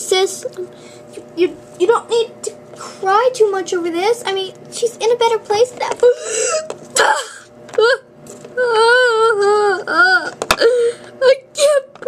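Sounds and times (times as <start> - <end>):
girl pretend crying: 6.0 - 12.0.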